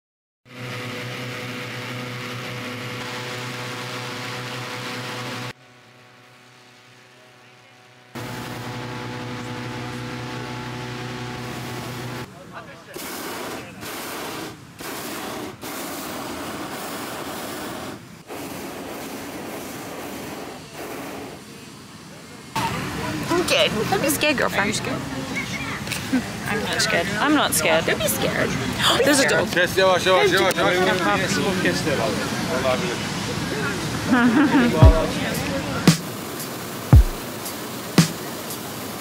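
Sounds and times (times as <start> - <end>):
loud steady droning: 0.5 - 12.3, 34.7 - 38.7
propane burner blasts: 0.5 - 24.5.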